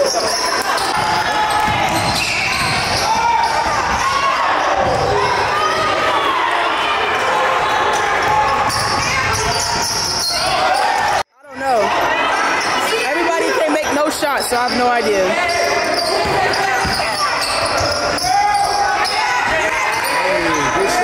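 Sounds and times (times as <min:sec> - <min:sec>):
voices shouting in a hall: 0:00.0 - 0:21.0.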